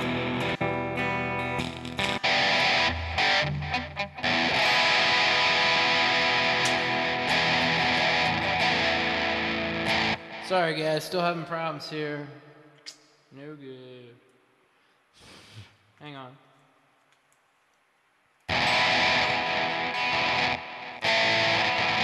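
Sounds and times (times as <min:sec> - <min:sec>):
electric guitar playing: 0:00.0 - 0:10.8, 0:18.5 - 0:22.0.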